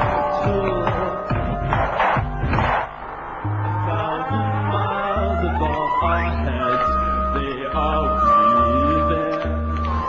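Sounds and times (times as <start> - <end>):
deep bass notes: 0.0 - 10.0
live concert music over pa: 0.0 - 10.0.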